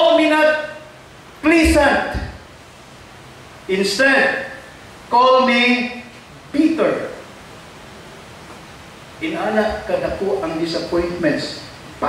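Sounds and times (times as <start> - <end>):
man speaking: 0.0 - 2.4, 3.7 - 7.2, 9.2 - 11.7
room noise and hiss: 0.0 - 12.0.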